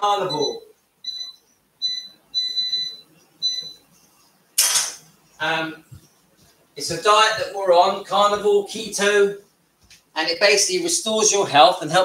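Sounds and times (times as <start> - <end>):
high-pitched appliance beeps: 0.0 - 3.8.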